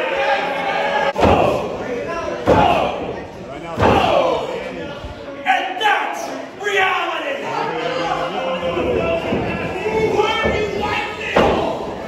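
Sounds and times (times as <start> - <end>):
spectators shouting: 0.0 - 3.2, 3.8 - 4.7.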